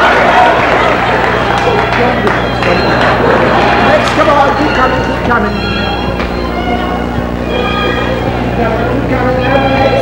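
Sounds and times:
music: 0.0s - 10.0s
voices: 0.0s - 10.0s.

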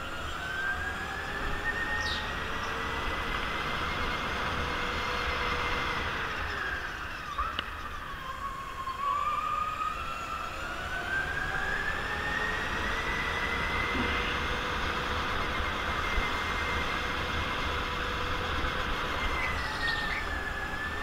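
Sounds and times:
go-kart drive whine: 0.0s - 21.0s.

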